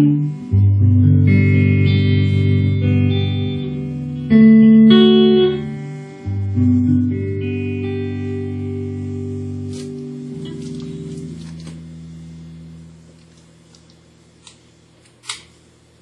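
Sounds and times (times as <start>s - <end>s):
electric guitar chord ringing: 0.0s - 15.0s.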